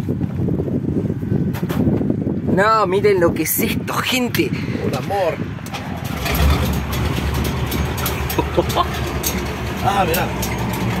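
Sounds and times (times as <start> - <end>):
diesel engine idling: 5.5 - 11.0.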